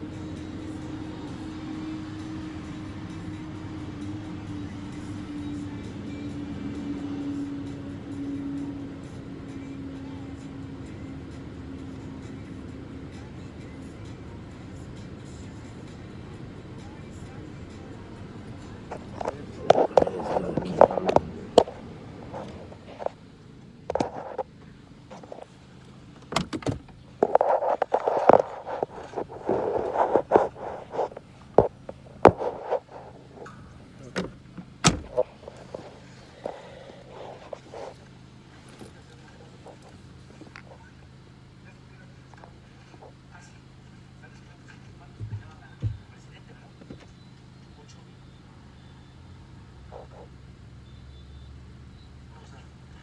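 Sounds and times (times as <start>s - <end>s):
car engine idling: 0.0s - 53.0s
phone rubbing against clothing: 18.8s - 23.2s, 23.9s - 24.5s, 27.2s - 33.7s, 35.1s - 40.7s, 49.9s - 50.3s.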